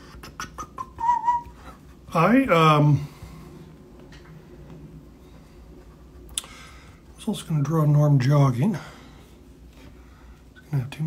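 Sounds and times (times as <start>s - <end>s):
person whistling softly: 0.6s - 1.8s.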